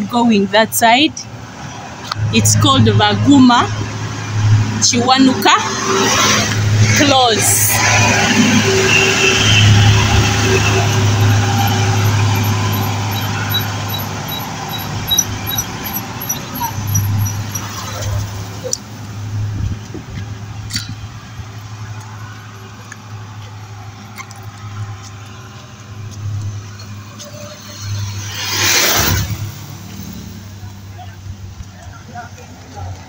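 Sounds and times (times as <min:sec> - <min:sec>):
vehicle engine and road noise: 0:00.0 - 0:33.0.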